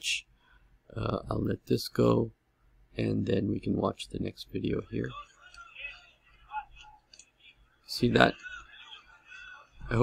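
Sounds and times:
faint low voices: 4.8s - 10.0s.

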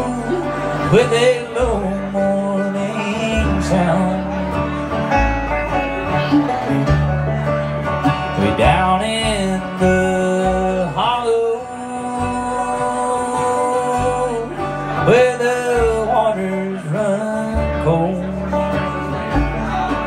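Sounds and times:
man singing long sliding notes: 0.0s - 4.7s, 8.3s - 20.0s
bluegrass band playing: 0.0s - 20.0s.

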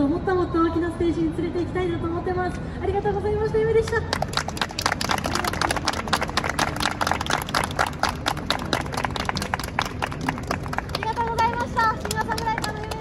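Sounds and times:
city background noise: 0.0s - 13.0s
hand claps: 4.1s - 13.0s.

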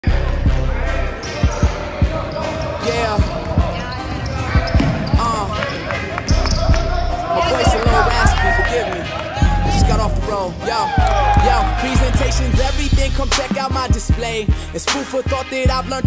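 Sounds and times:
voices in background: 0.7s - 9.4s
sneakers squeaking: 1.2s - 9.2s.

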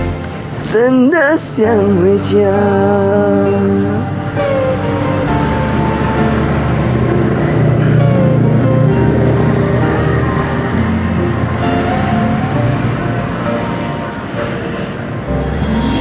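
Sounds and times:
pop ballad karaoke backing track: 0.0s - 5.2s.

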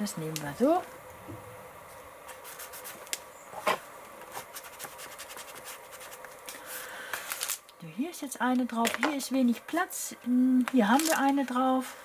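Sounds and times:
paper and plastic rustling: 2.3s - 7.6s, 10.6s - 12.0s.

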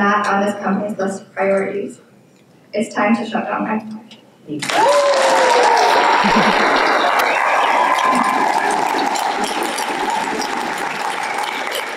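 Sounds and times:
audience applauding: 4.6s - 11.9s
audience cheering: 4.6s - 11.9s.

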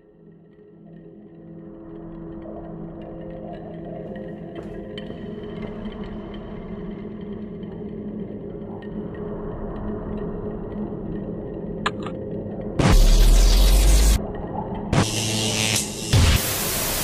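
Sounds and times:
dark ambient drone music: 0.0s - 17.0s.

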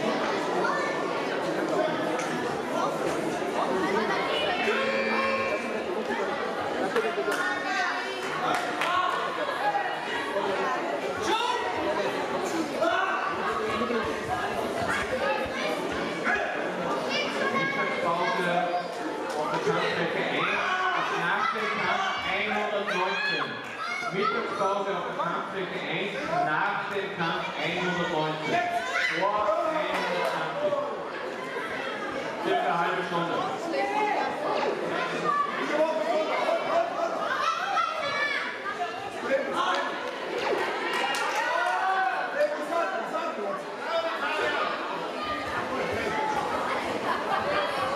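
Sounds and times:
children's voices: 0.0s - 25.0s, 27.5s - 41.7s, 43.7s - 47.9s
crowd chattering in echoing hall: 0.0s - 47.9s
people talking and calling out: 0.0s - 47.9s.

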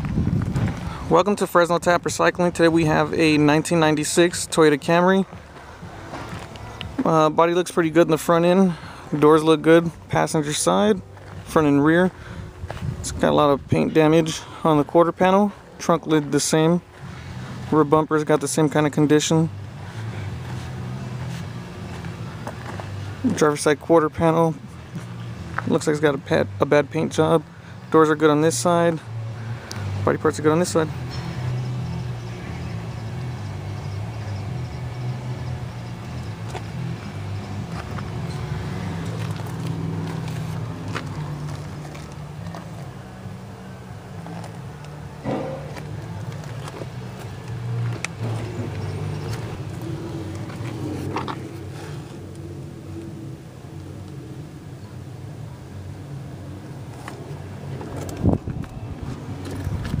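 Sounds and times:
car engine idling: 14.3s - 60.0s
loud thump: 45.2s - 46.0s.

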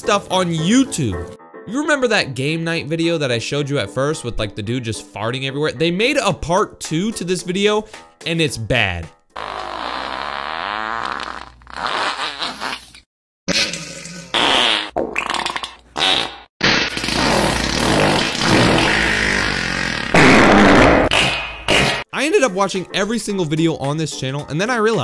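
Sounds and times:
cartoon fart sound effects: 9.4s - 22.0s.

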